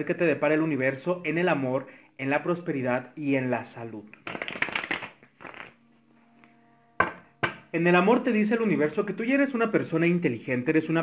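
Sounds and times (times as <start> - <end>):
cards being shuffled: 4.2 - 5.8.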